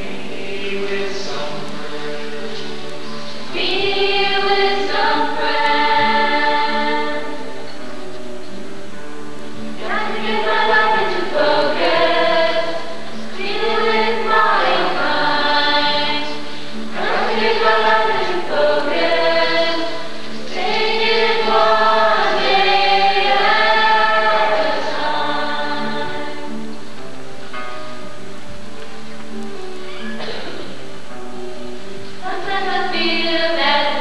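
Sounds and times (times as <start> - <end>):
group singing: 0.0 - 2.8, 3.4 - 7.5, 9.8 - 26.6, 32.2 - 34.0.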